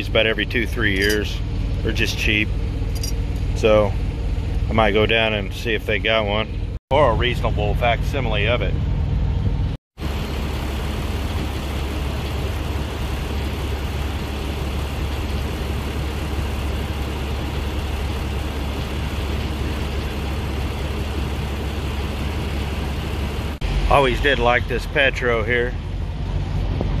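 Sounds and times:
diesel truck engine rumbling: 0:00.0 - 0:27.0.

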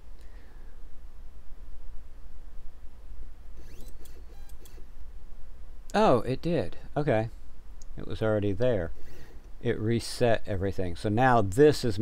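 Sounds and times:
steady low hum: 0:00.0 - 0:12.0
clicks: 0:03.6 - 0:04.8.

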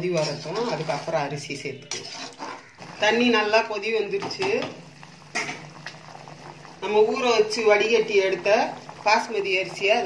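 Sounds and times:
water boiling in a pot: 0:00.0 - 0:10.0.

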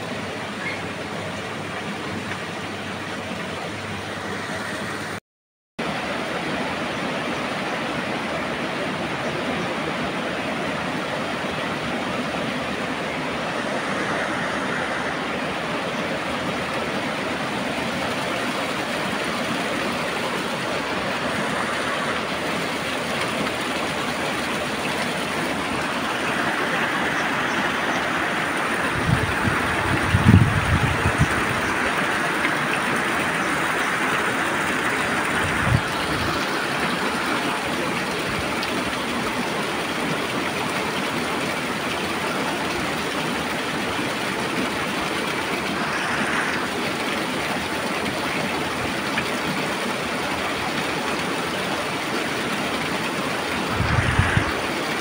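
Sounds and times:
stream running over rocks: 0:00.0 - 0:05.2, 0:05.8 - 0:55.0.

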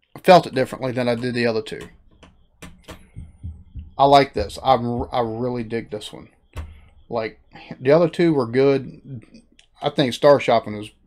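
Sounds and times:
man speaking: 0:00.2 - 0:01.9, 0:04.0 - 0:06.2, 0:07.1 - 0:11.0
soft low thumps: 0:00.6 - 0:07.5.

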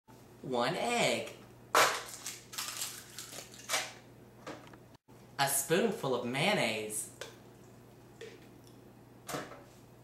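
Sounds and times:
eggshell crackling: 0:01.8 - 0:03.9.

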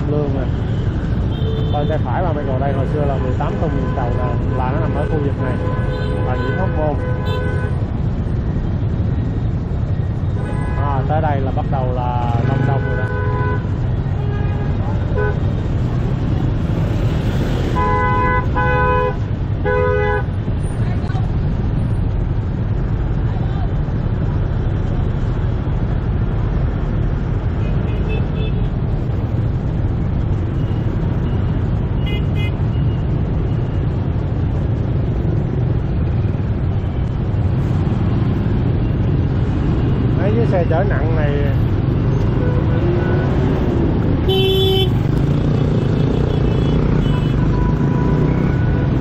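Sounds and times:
horns beeping: 0:42.0 - 0:49.0.

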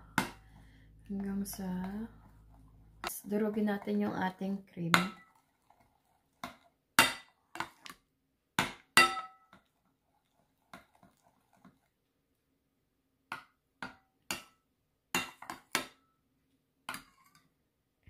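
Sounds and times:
metal spoon clinking ceramic bowl: 0:09.0 - 0:09.6.

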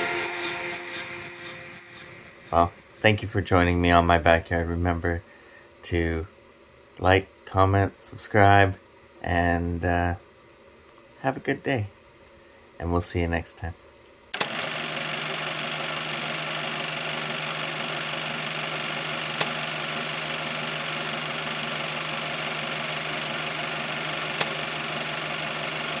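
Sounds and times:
sharp clicks: 0:14.3 - 0:15.0, 0:18.4 - 0:26.0
machine running hum with hiss: 0:14.3 - 0:26.0.

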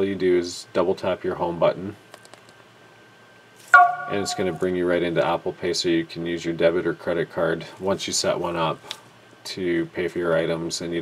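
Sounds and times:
brief ringing tone: 0:03.8 - 0:04.6
person speaking: 0:03.8 - 0:04.8.

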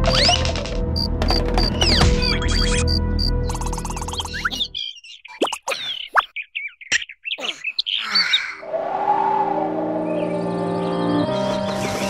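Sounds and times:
cartoon squeaky chirps: 0:01.6 - 0:08.4
background music with held notes: 0:09.7 - 0:12.0.

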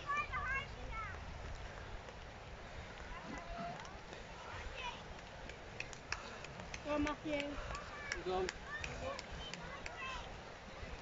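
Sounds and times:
steady outdoor hiss: 0:00.0 - 0:11.0
light footfalls of runners: 0:00.6 - 0:11.0.

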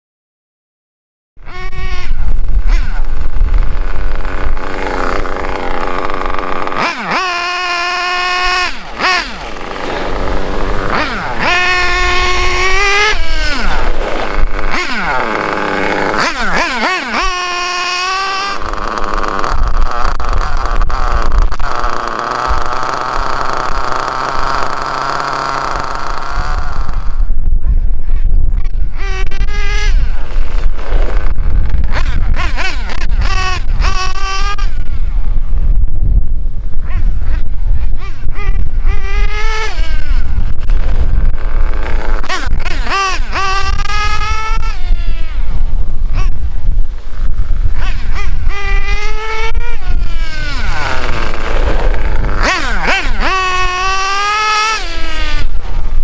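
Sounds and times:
small nitro engine revving: 0:01.4 - 0:35.6, 0:36.6 - 0:56.0.

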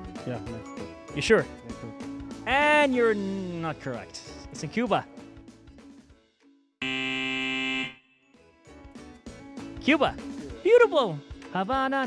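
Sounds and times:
game show buzzer: 0:06.8 - 0:08.0.

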